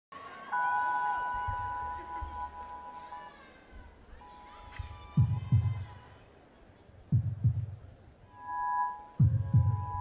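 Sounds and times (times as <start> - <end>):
soft low thumps: 4.8 - 5.9, 7.1 - 8.0, 9.1 - 10.0.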